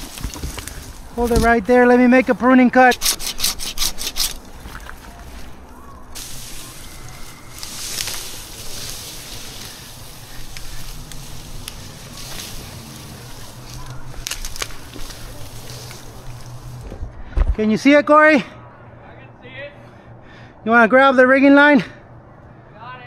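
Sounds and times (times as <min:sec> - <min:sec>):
branches and needles rustling: 0:00.0 - 0:18.0
sharp scrapes: 0:02.8 - 0:04.5.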